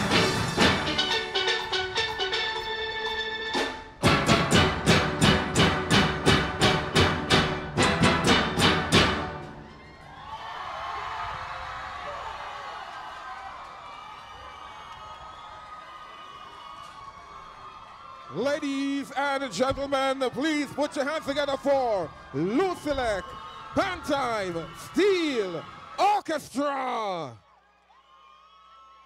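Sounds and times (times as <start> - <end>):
crowd cheering and applause: 0.0 - 2.0, 3.6 - 29.0
steel band with drums: 0.0 - 9.6.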